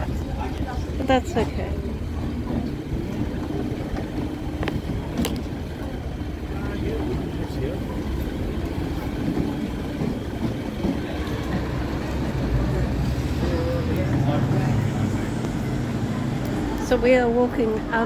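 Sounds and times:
indistinct voices of passersby: 0.0s - 18.0s
road traffic rumble: 0.0s - 18.0s.

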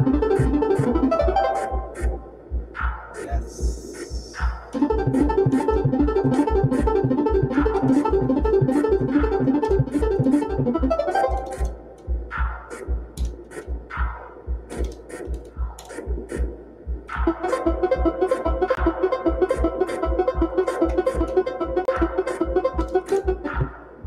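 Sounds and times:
sparse plucked notes: 0.0s - 2.3s, 4.7s - 12.5s, 17.1s - 24.0s
busy pitched synth pattern: 0.0s - 2.4s, 4.7s - 12.4s, 17.1s - 24.0s
clicky percussion: 2.8s - 23.8s
low bass pulse: 4.1s - 11.0s.

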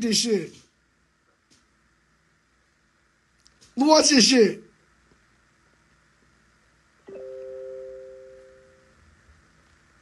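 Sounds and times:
phone message alert chime: 7.1s - 8.9s.

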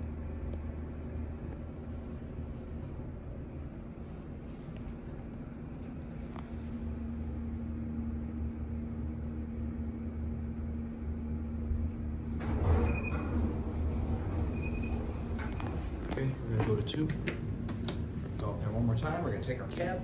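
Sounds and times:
elevator pump motor humming: 0.0s - 20.0s
elevator doors sliding open: 11.6s - 18.3s.

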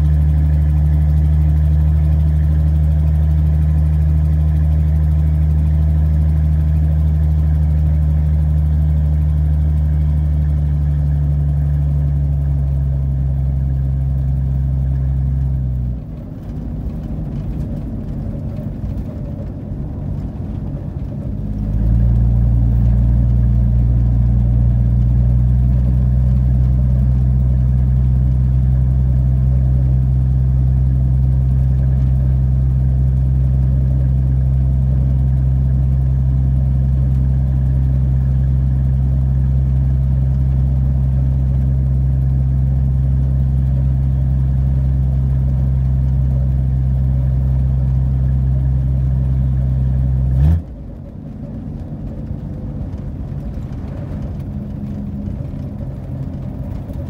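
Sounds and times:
truck engine droning: 0.0s - 57.0s.

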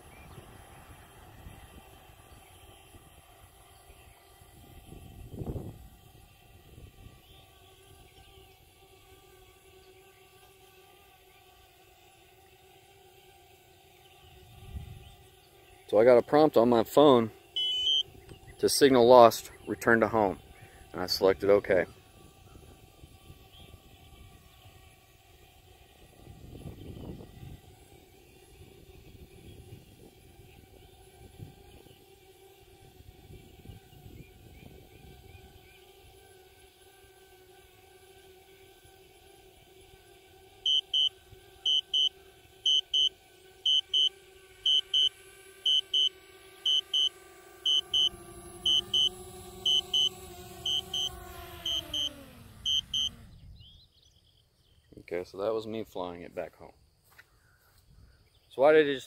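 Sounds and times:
drone propellers humming: 0.0s - 56.1s
high warning beeps in pairs: 17.6s - 18.0s, 40.7s - 41.1s, 41.7s - 42.1s, 42.7s - 43.1s, 43.7s - 44.1s, 44.7s - 45.1s, 45.7s - 46.1s, 46.7s - 47.1s, 47.7s - 52.1s, 52.7s - 53.1s.

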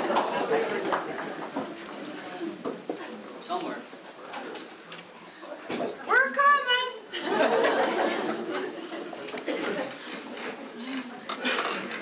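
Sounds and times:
faint scattered voices: 8.0s - 12.0s.

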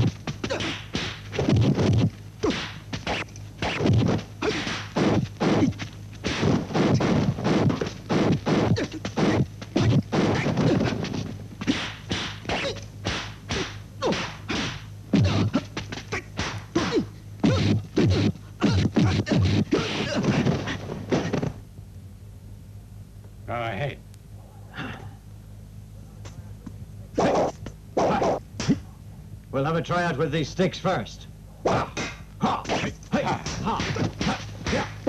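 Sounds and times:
punch and kick thwacks: 0.0s - 21.6s, 27.2s - 28.8s, 31.7s - 35.0s.

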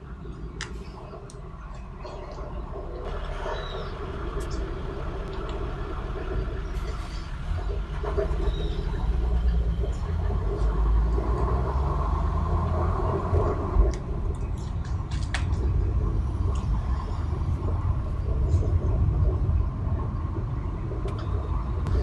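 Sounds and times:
car engine and road rumble: 0.0s - 22.0s.

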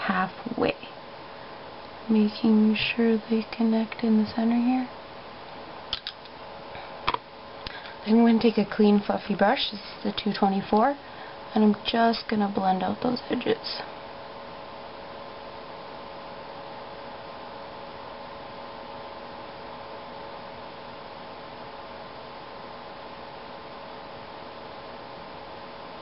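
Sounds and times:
faint even hum: 0.0s - 26.0s
steady background hiss: 0.0s - 26.0s.

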